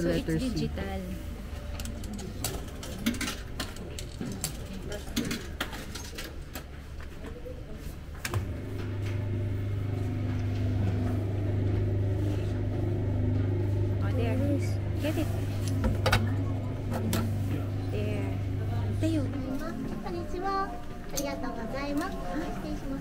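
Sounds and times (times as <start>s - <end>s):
machine motor humming: 8.3s - 23.0s.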